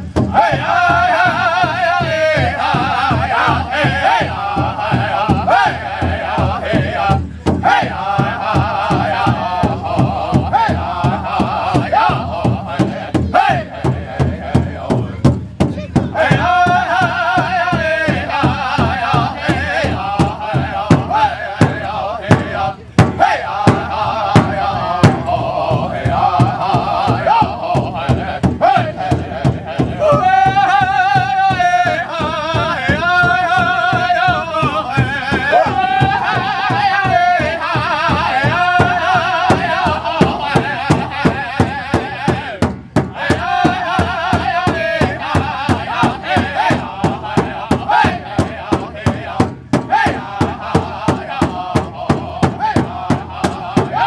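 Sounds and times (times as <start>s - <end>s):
big drum steady beat: 0.0s - 54.0s
men singing high-pitched in unison: 0.0s - 54.0s.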